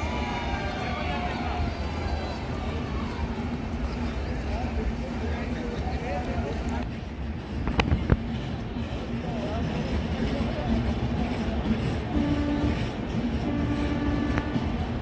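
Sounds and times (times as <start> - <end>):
bystanders' voices: 0.0 - 15.0
train rumbling: 0.0 - 15.0.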